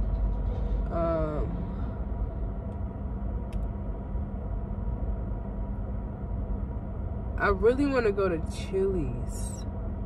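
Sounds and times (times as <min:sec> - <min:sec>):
car cabin rumble and hum: 0:00.0 - 0:10.0.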